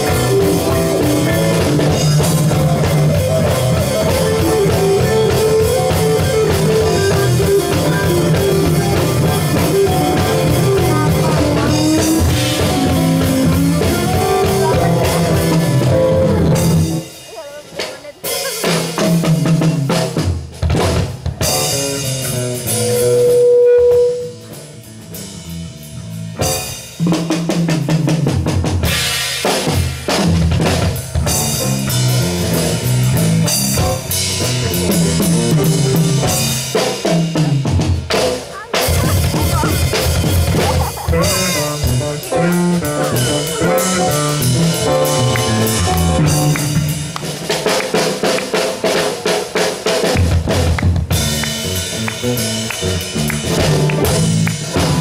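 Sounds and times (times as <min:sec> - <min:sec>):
drum kit: 0:00.0 - 0:55.0
live band playing: 0:00.0 - 0:55.0.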